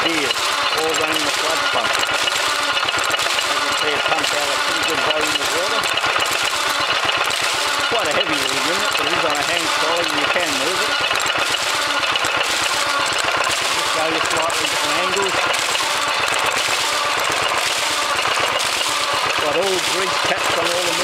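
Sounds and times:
stationary engine clattering: 0.0s - 21.0s.

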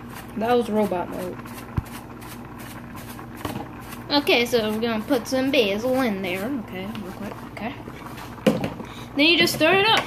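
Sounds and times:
utensil stirring thick gravy: 0.0s - 8.2s
low mechanical hum: 0.0s - 10.0s.

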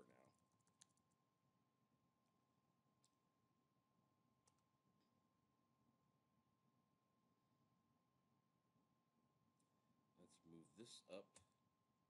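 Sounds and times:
click: 0.5s - 1.2s, 3.0s - 3.2s, 4.4s - 5.1s.

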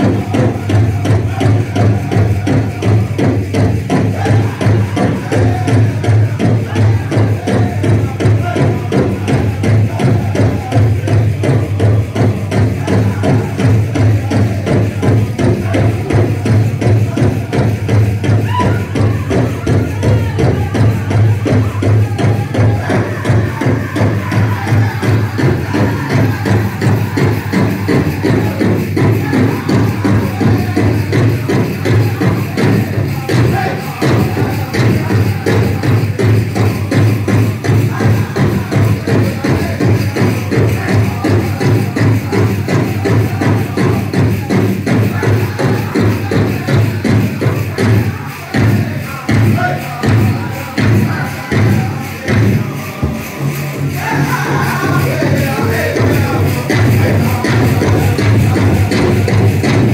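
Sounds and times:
big drum beating: 0.0s - 59.9s
people singing: 0.0s - 59.9s.

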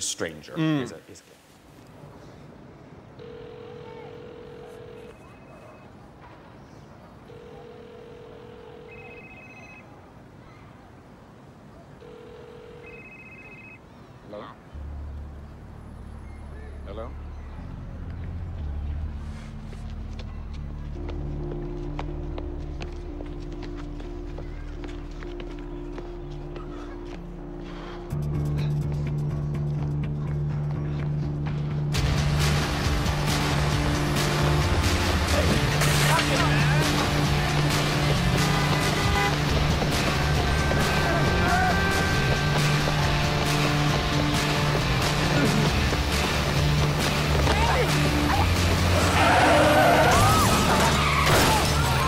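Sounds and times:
steady low phone tone: 3.0s - 6.1s, 7.1s - 10.0s, 12.0s - 13.9s.

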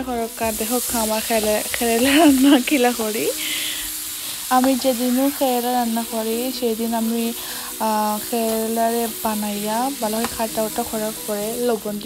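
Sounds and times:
woman talking: 0.0s - 3.8s, 4.5s - 12.0s
vegetables sizzling in hot oil: 0.0s - 12.0s.

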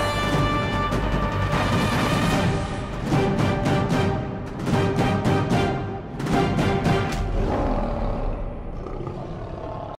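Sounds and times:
lion roar: 7.2s - 10.0s.

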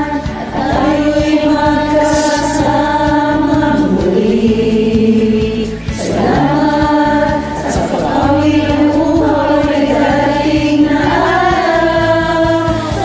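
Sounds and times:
group singing in chorus: 0.0s - 13.0s
karaoke backing track with drums: 0.0s - 13.0s.

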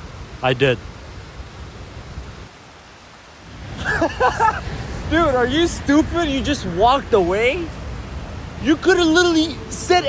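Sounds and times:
outdoor hiss: 0.0s - 10.0s.

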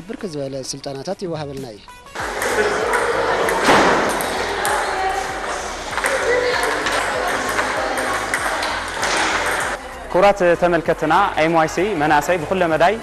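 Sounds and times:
table tennis balls clicking: 2.2s - 9.8s.

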